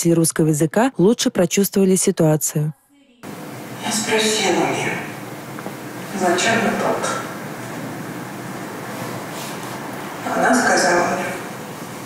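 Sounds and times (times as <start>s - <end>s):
woman speaking: 0.0s - 5.2s, 6.1s - 7.4s, 10.2s - 11.5s
low background noise: 0.0s - 12.0s.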